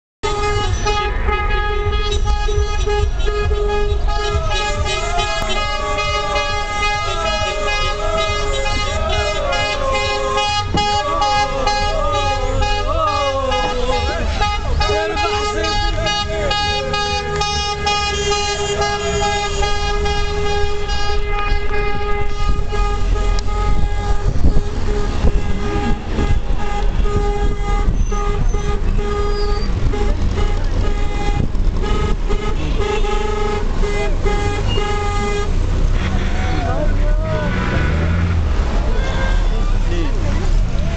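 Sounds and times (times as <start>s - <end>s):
car horns blaring: 0.2s - 40.9s
low rumble of engines: 0.2s - 40.9s
people shouting: 3.0s - 21.3s.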